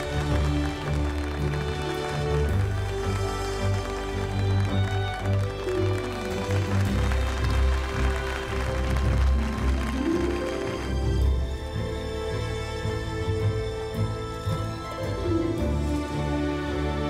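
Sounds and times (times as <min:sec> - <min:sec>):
film score music: 0:00.0 - 0:17.0.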